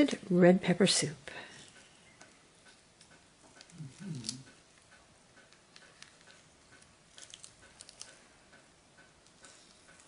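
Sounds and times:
faint regular ticking: 1.2 - 10.0
peeling roasted peppers crackle: 1.6 - 10.0.

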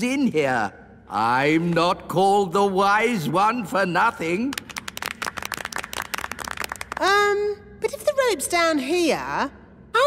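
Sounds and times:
group clapping hands: 4.3 - 7.3.

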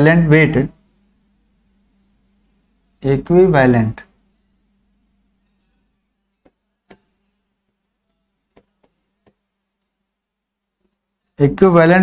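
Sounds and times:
faint steady hum: 0.0 - 12.0
chalk tapping on blackboard: 6.4 - 7.2, 8.1 - 9.5.

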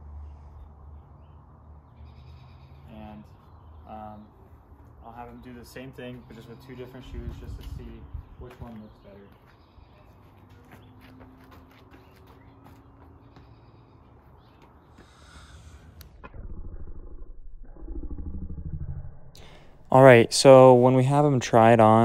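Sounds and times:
light steps on brick pavers: 7.3 - 15.8
slowed-down voices growling: 16.2 - 22.0.

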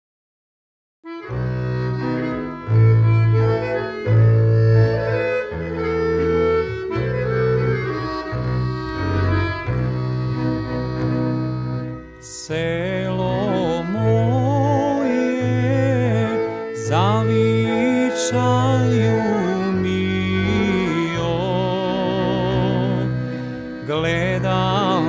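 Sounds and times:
sustained melody notes: 1.1 - 25.0
deep stepping bass line: 1.3 - 17.8
man singing with vibrato: 12.2 - 25.0.

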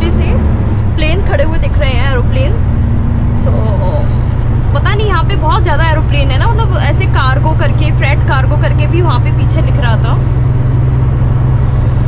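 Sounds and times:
truck engine and road rumble: 0.0 - 12.0.

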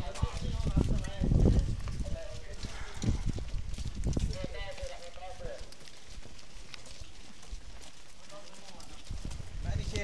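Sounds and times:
footsteps on dirt road: 0.0 - 10.0.

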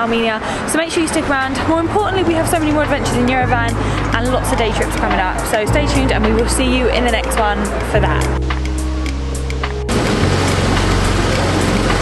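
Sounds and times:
background music: 1.6 - 12.0.

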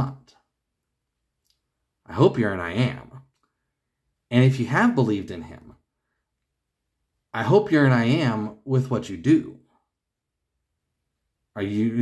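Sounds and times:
person speaking: 0.0 - 0.5, 1.4 - 3.5, 4.2 - 5.9, 7.3 - 9.8, 11.5 - 12.0.

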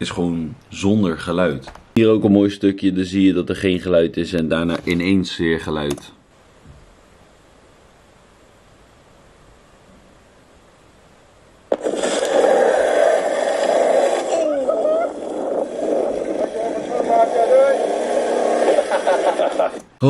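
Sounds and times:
faint hiss: 0.0 - 20.0
voices: 13.7 - 19.9.

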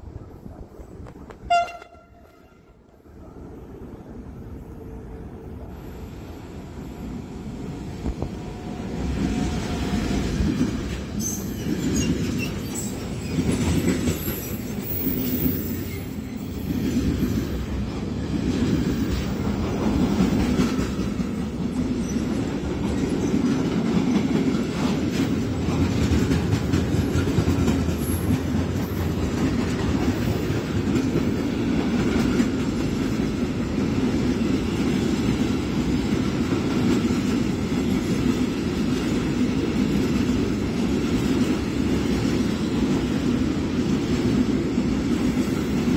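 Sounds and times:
electric locomotive passing: 0.0 - 45.9
rumble of wheels on rail: 0.0 - 45.9.

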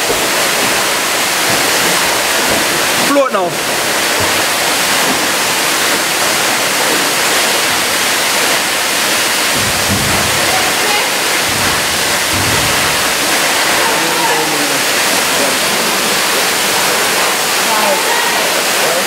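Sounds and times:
waterfall rushing: 0.0 - 19.0.

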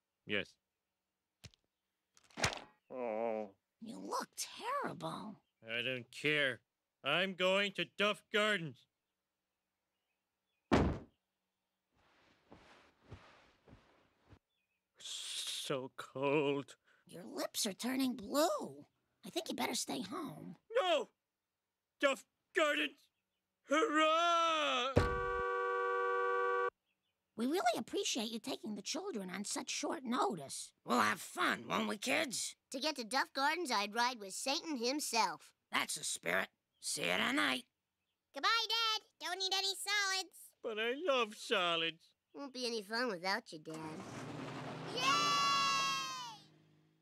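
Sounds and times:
thump: 10.7 - 11.2, 25.0 - 25.4
car horn blast: 25.0 - 26.7
children cheering: 44.8 - 46.5.

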